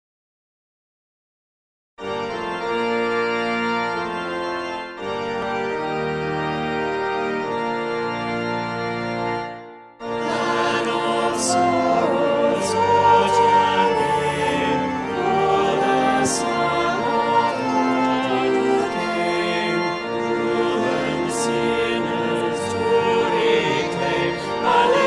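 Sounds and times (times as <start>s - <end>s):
organ playing sustained chords: 2.0s - 25.0s
choir singing a hymn: 10.1s - 25.0s.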